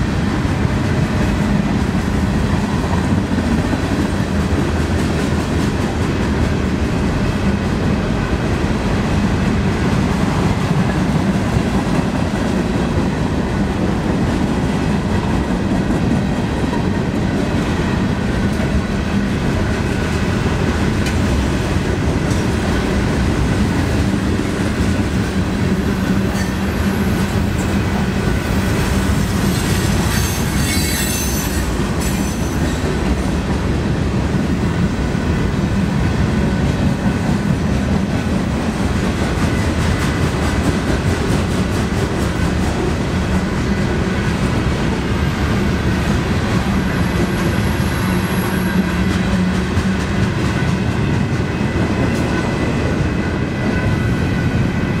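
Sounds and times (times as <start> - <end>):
train wheels rumbling on rails: 0.0 - 55.0
high wheel squeal: 29.4 - 32.8.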